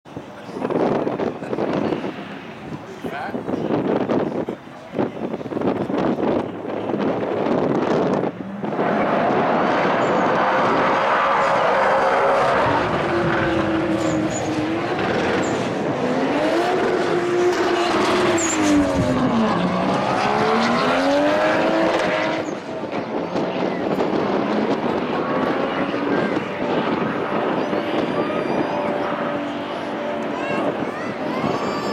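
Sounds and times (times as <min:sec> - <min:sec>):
car engines revving hard: 0:00.4 - 0:31.9.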